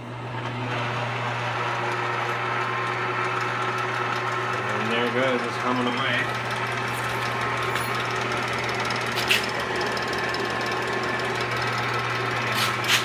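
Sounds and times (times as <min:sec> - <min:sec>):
electric motor humming: 0:00.0 - 0:13.0.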